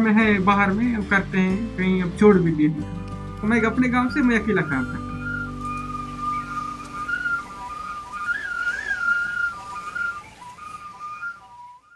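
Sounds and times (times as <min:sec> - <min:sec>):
high whistle-like melody: 0:03.3 - 0:11.9.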